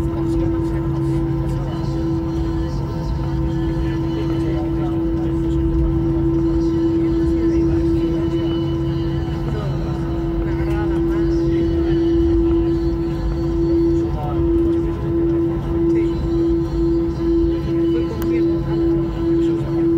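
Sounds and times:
jet engines idling: 0.0s - 19.9s
low rumble: 0.0s - 19.9s.

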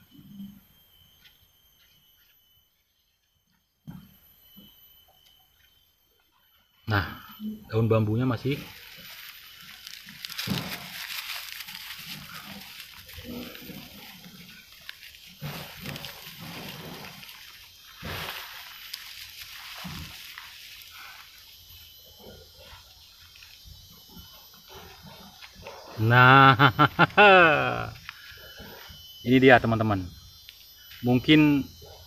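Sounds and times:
dry leaves rustling and crackling: 8.4s - 21.6s.

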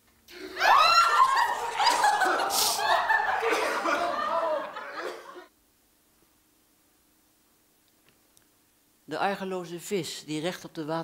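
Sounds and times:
people laughing and giggling: 0.3s - 5.5s.

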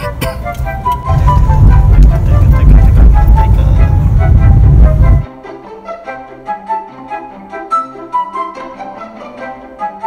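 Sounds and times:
car rumble inside cabin: 0.0s - 5.3s
background music: 0.0s - 10.0s.

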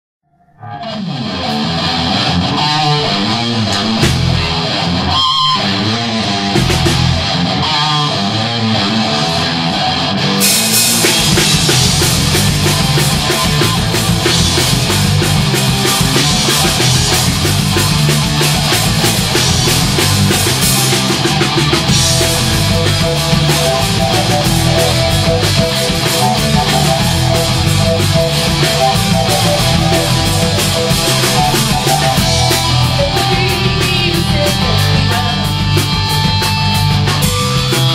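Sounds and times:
bass guitar: 0.4s - 37.9s
electric guitars: 0.5s - 37.9s
drum kit: 1.1s - 37.9s
keyboard: 10.0s - 37.9s.

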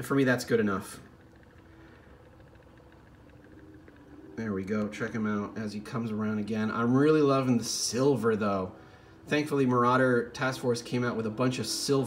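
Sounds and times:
light ticking: 0.0s - 7.3s
turntable motor hum: 0.0s - 12.0s.

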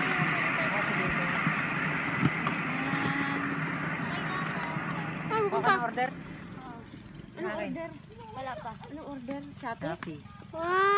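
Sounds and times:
child's high-pitched voice: 2.8s - 5.8s, 10.2s - 10.9s.

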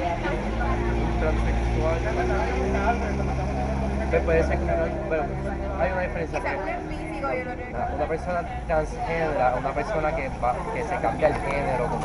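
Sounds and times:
indistinct talk: 0.0s - 12.0s.

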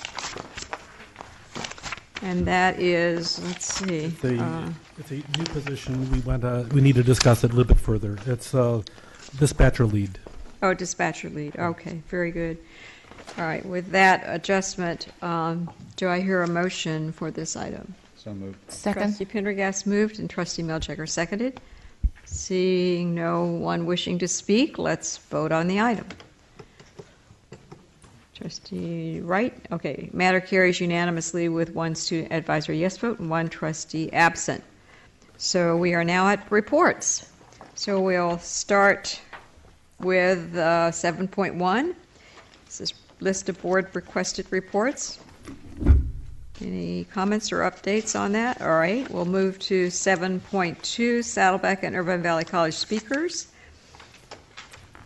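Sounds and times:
papers rustling: 0.0s - 10.6s, 52.8s - 55.0s.

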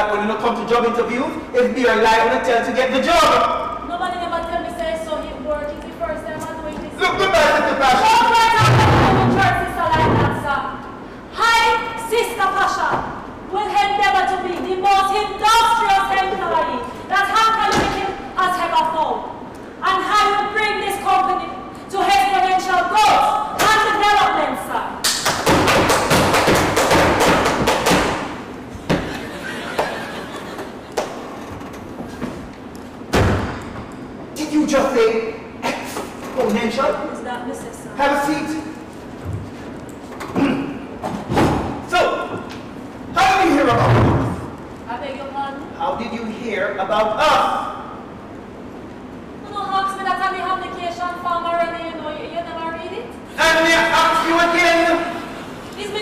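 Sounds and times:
people talking: 0.0s - 10.8s, 11.4s - 25.0s, 49.4s - 55.0s, 55.8s - 56.0s
woman exclaiming loudly: 11.4s - 13.0s
thump: 33.1s - 33.6s.

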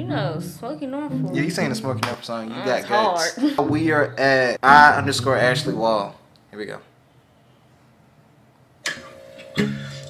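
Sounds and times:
acoustic guitar strumming: 8.9s - 10.0s.

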